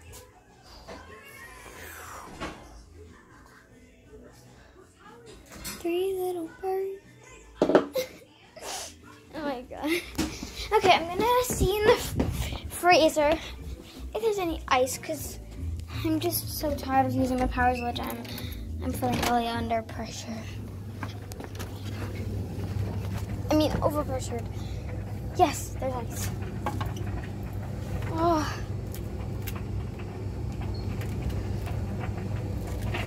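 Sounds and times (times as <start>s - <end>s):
steady low hum: 18.2s - 33.0s.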